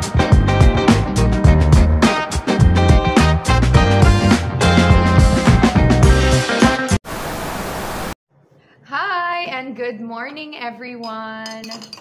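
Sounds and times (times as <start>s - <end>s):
hissing static noise: 7.1s - 8.2s.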